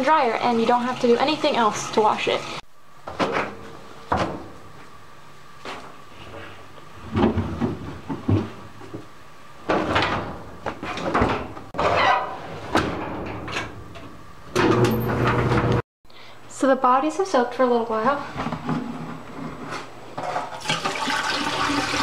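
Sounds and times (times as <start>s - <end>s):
knocks and thumps loading dryer: 3.1s - 4.6s, 7.0s - 15.8s.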